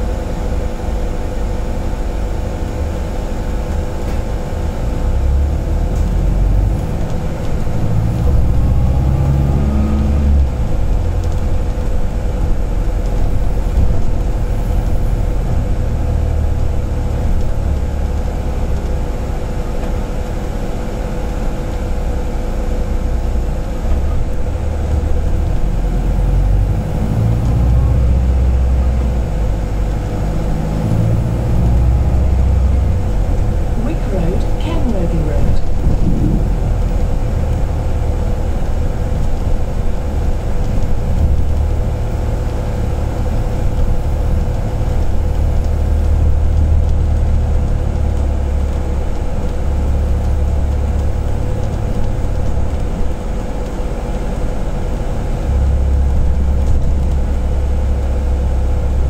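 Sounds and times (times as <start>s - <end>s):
bus drivetrain and road rumble: 0.0s - 59.0s
steady hum: 27.8s - 49.4s.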